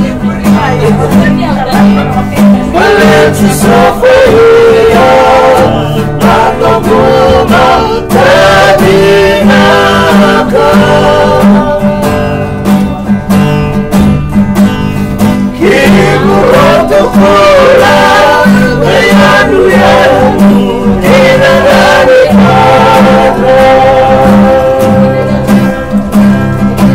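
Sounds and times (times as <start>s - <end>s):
strummed acoustic guitars: 0.0s - 26.9s
men singing in harmony: 1.0s - 12.5s, 15.5s - 26.1s.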